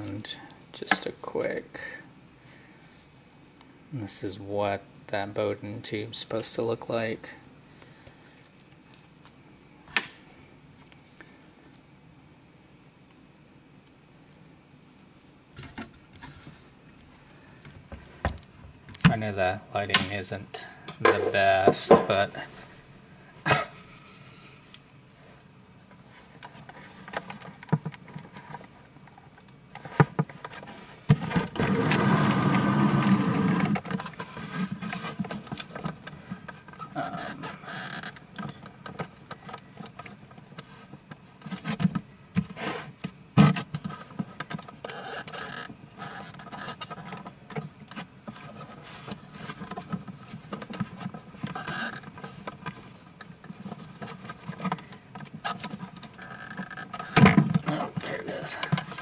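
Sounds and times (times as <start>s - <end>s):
steady rubbing noise: 29.8s - 35.5s.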